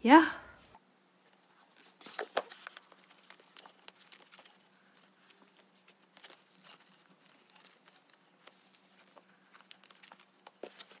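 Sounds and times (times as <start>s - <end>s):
photocards flipped through by hand: 1.7s - 11.0s.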